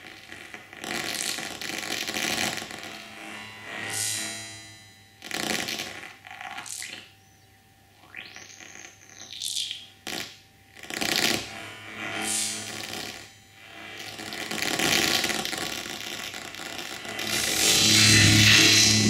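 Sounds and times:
noisy electronic textures: 0.0 - 7.4, 8.0 - 19.0
rising synth sweep: 11.6 - 14.6, 16.8 - 19.0.

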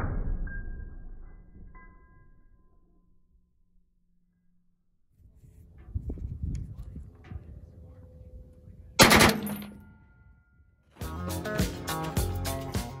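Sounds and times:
gunshot echo: 9.0 - 9.8
machine gun burst: 9.0 - 9.8
music: 10.9 - 13.0.

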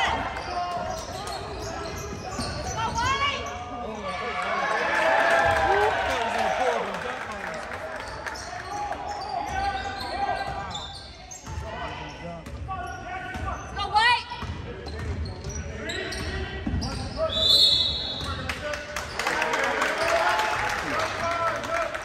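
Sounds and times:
sneakers squeaking: 0.0 - 4.4, 8.0 - 18.4
spectators' voices echoing: 0.0 - 10.7, 15.5 - 22.0.

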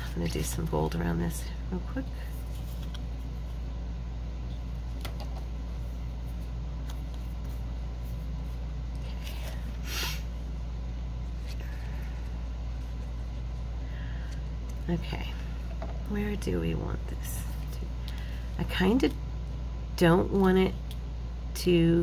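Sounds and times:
low hum: 0.0 - 22.0.

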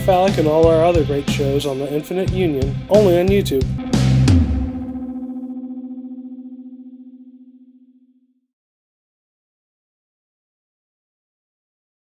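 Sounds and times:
distorted electric guitar chord: 0.0 - 8.4.

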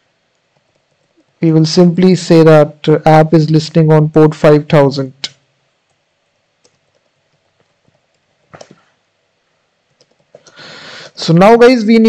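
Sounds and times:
typing on computer keyboard: 9.9 - 10.5.

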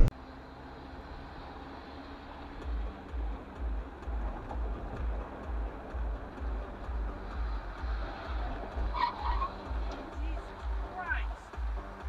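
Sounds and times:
vehicle noise: 0.0 - 12.0
music with bass beat: 2.6 - 12.0.

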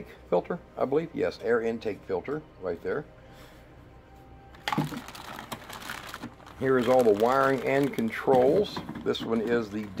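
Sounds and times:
rummaging in box of plastic bags: 4.6 - 10.0.

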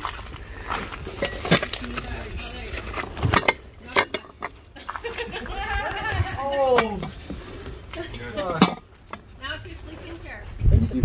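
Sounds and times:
dishes clinking and knocking: 3.2 - 4.6, 8.6 - 8.9.

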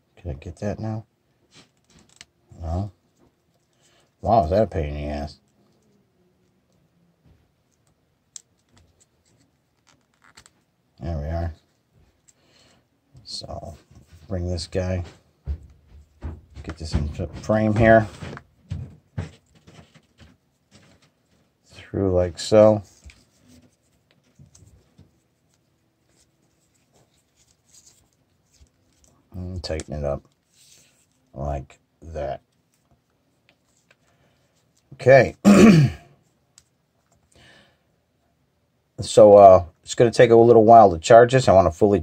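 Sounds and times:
strap cord rustling and ticking: 7.7 - 10.7, 13.5 - 21.8, 22.4 - 31.4.

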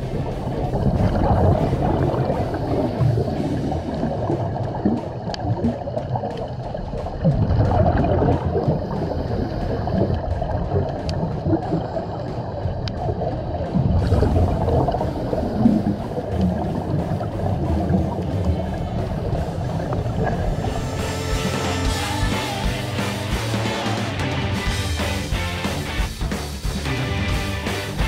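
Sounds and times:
underwater rushing and gurgling: 0.0 - 28.0
sharp clicks: 4.3 - 14.1.

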